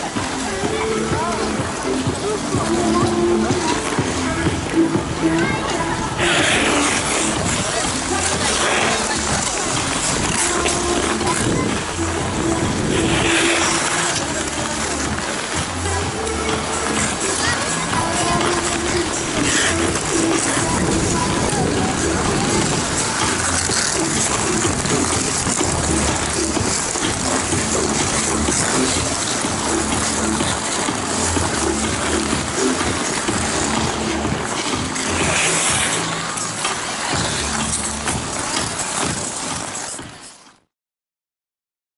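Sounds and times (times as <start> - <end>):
crowd of voices: 0.0 - 40.5
music: 0.0 - 40.6
ice skates scraping ice: 0.0 - 40.7.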